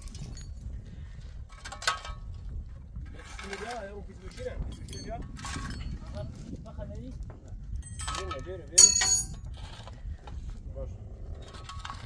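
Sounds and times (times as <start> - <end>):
sharp clink on concrete block: 7.9 - 9.4.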